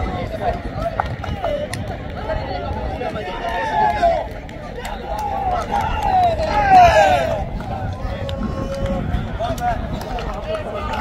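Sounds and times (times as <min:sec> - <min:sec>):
men shouting and talking: 0:00.0 - 0:11.0
wind on microphone: 0:00.0 - 0:11.0.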